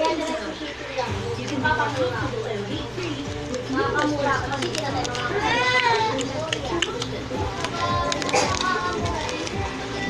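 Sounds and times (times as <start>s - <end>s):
background music: 0.0s - 10.0s
girl's voice: 3.8s - 10.0s.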